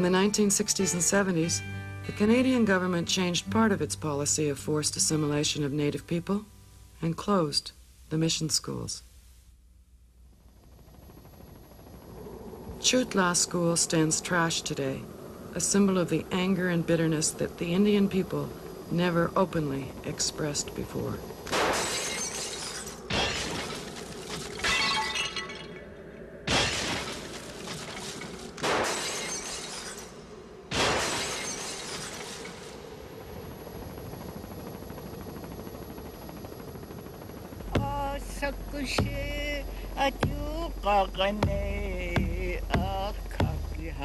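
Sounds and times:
glass shattering: 21.7s - 25.8s, 28.8s - 30.1s, 31.0s - 32.5s
frame drum beating: 37.6s - 40.7s, 41.4s - 44.0s
person singing a chant: 37.7s - 44.0s.

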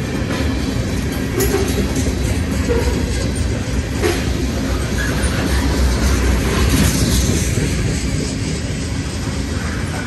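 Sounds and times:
train wheels rumbling on rail: 0.0s - 10.0s.

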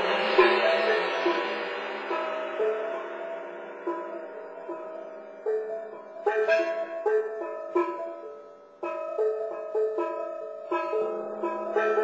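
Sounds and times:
plucked melodic notes: 0.0s - 12.0s.

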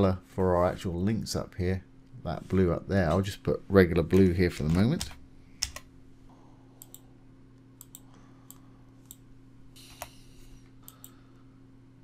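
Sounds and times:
faint steady low hum: 0.0s - 12.0s
computer keyboard keystrokes: 4.2s - 5.9s.

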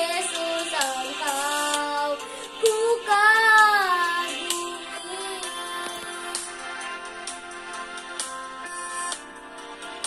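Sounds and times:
boy singing: 0.0s - 6.4s
music accompaniment: 0.0s - 10.0s.

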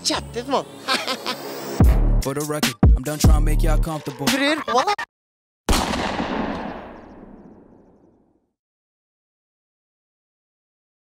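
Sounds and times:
boom hit with long tail: 5.7s - 7.7s.

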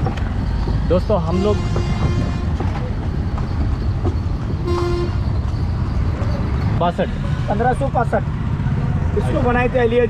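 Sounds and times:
horse-drawn cart rumbling: 0.0s - 6.8s
vehicle horn toot: 1.3s - 2.6s, 4.6s - 5.4s.

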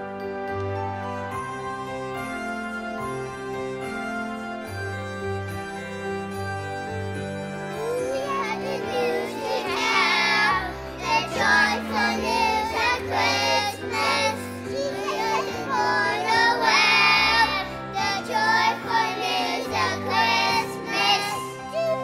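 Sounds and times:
piano accompaniment: 0.0s - 22.0s
children's choir singing: 7.8s - 22.0s.

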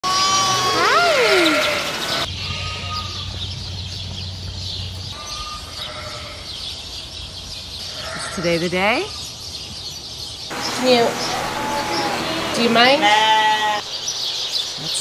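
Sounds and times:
sheep bleating: 0.1s - 3.3s, 5.2s - 6.5s, 11.2s - 13.8s.

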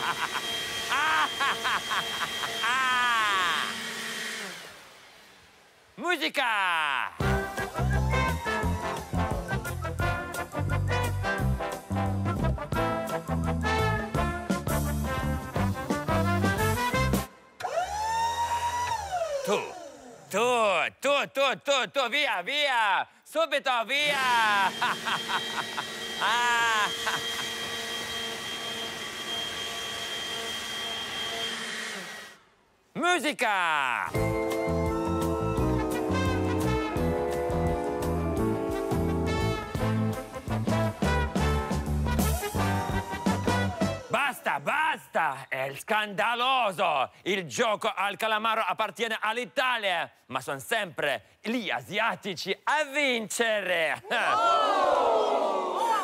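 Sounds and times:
person laughing: 0.0s - 3.9s, 24.1s - 27.8s, 54.0s - 54.5s
man calling out: 6.0s - 7.4s, 19.4s - 24.7s, 33.0s - 34.2s, 44.0s - 47.6s.

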